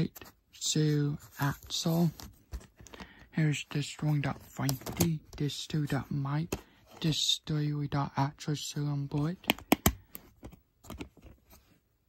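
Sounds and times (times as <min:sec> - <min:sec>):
plastic dvd case clicking: 0:09.4 - 0:11.2.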